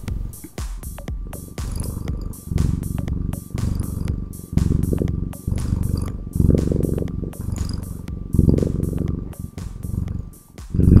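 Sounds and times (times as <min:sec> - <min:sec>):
cat purring: 0:00.0 - 0:11.0.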